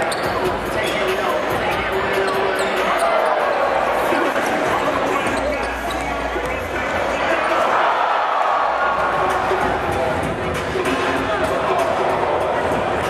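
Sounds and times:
sneakers squeaking: 0.0 - 7.7
crowd voices in large hall: 0.0 - 13.0.

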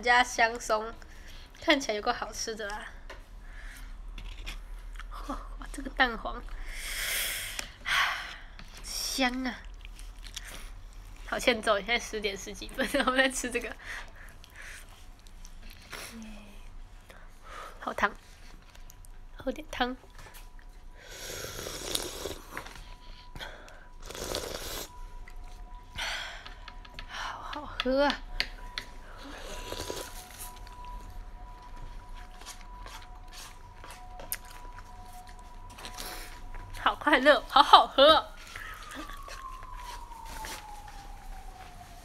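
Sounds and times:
person slurping hot soup: 21.1 - 22.5, 24.0 - 24.9, 29.4 - 30.2.

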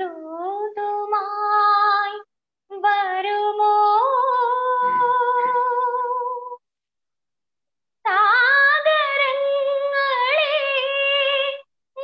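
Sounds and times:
woman singing unaccompanied: 0.0 - 6.6, 8.0 - 12.0.

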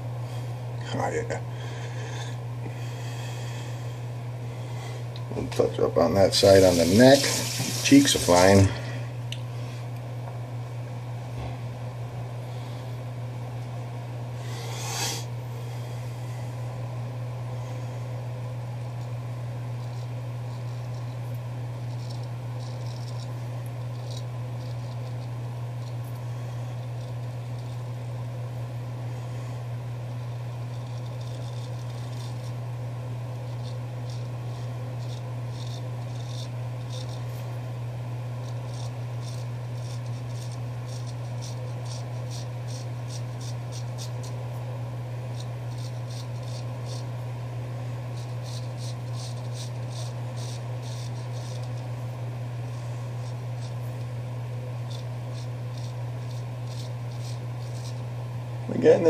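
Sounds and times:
steady low hum: 0.0 - 59.0
razor scraping stubble: 1.7 - 9.0, 14.4 - 15.4, 18.8 - 59.0.

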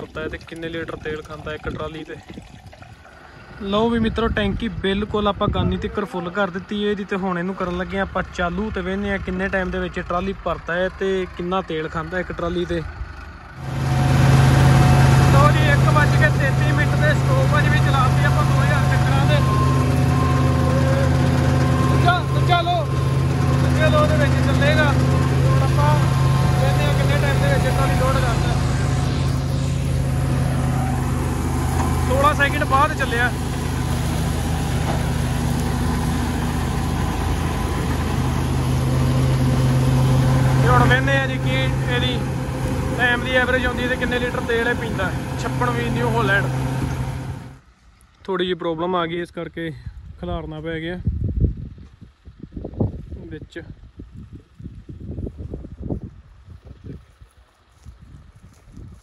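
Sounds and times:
tractor diesel engine running: 0.0 - 47.9, 51.6 - 59.0.

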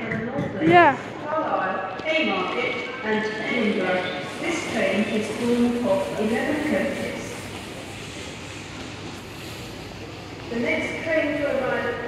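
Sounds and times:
railway platform background noise: 0.0 - 12.0.

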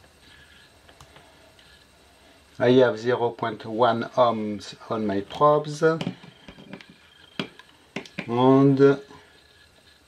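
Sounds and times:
test probes clicking on metal pins: 6.0 - 8.4.

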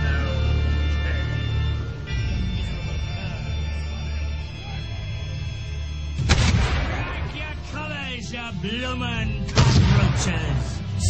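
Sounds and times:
cannon blast: 6.2 - 7.7, 9.5 - 10.8.

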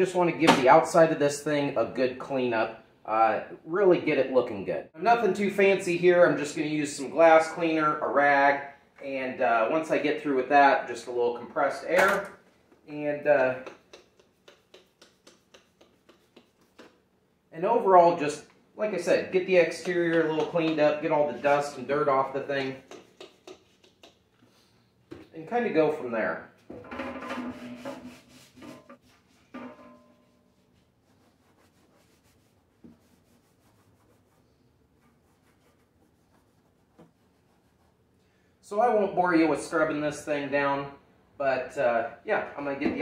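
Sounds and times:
cloth rag wiping metal: 13.7 - 17.0, 27.4 - 29.6, 30.2 - 38.1.

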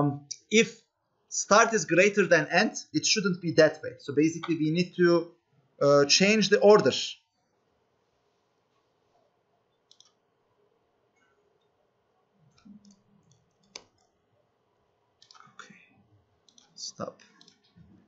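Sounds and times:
laptop keyboard typing clicks: 9.9 - 10.2.

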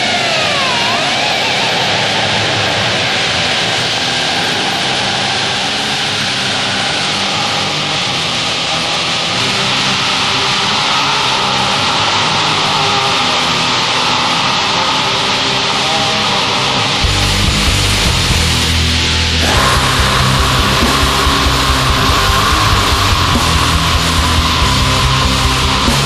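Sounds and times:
distorted guitars black metal: 0.0 - 26.0.

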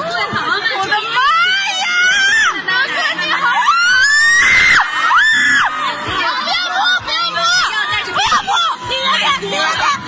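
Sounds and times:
crowd chatter: 0.0 - 10.0
fans screaming: 1.2 - 10.0.

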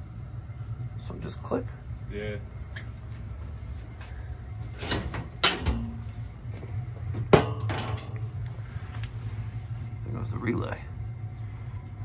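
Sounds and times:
steady low hum: 0.0 - 12.0
sheet metal panel clanking: 4.8 - 6.0, 7.3 - 8.2.

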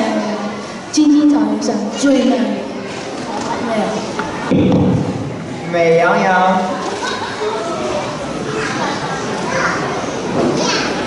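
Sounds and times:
children talking and calling out: 0.0 - 4.5, 6.6 - 11.0.

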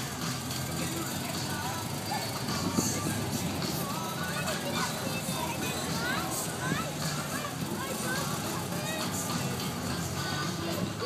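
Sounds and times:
background music: 0.0 - 11.0
crowd chatter: 0.0 - 11.0
small car engine pulling away: 0.0 - 11.0.

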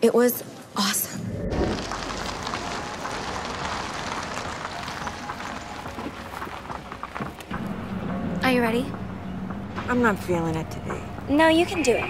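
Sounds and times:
road and traffic noise: 2.7 - 12.0.

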